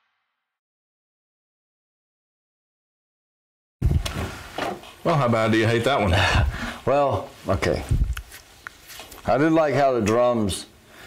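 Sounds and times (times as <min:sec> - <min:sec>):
people moving rustle: 0:07.3 - 0:09.3.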